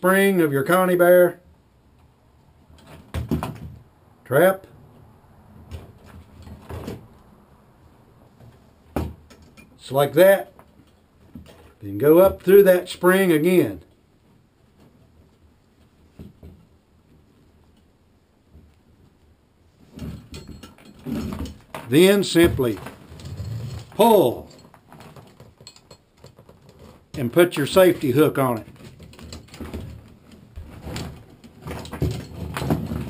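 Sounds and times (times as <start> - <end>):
handling sound: 19.8 - 33.0
rope scraping through trap spring: 19.8 - 33.0.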